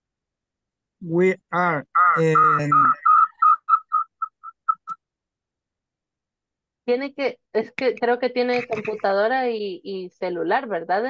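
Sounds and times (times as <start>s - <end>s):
high-pitched electronic beeps: 2.0s - 5.0s.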